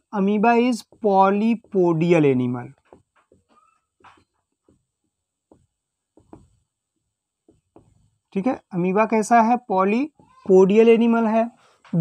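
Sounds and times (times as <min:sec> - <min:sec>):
marker pen squeaking on whiteboard: 0:00.4 - 0:08.4, 0:09.9 - 0:12.0.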